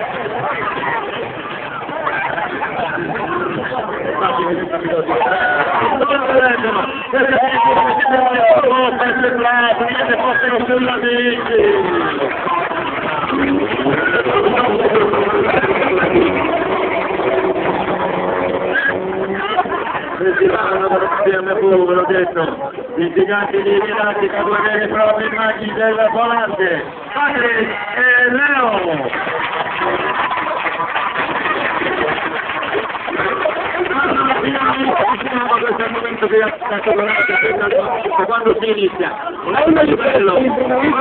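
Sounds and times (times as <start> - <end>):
crowd voices: 0.0 - 41.0
car engine revving: 12.0 - 20.2.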